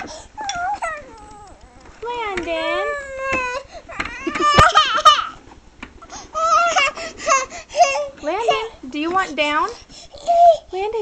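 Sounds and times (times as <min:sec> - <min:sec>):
baby whining cries: 0:00.0 - 0:05.4, 0:06.1 - 0:08.7, 0:10.1 - 0:10.7.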